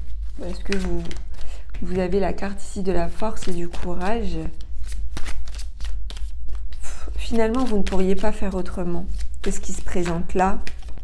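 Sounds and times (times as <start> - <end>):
cards being shuffled by hand: 0.0 - 11.0.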